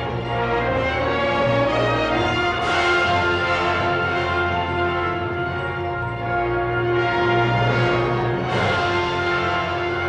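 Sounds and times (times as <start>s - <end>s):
orchestral music with sustained chords: 0.0s - 10.0s.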